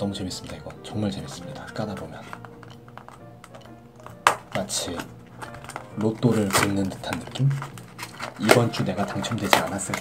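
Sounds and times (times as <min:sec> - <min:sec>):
cardboard handling: 0:04.0 - 0:10.0.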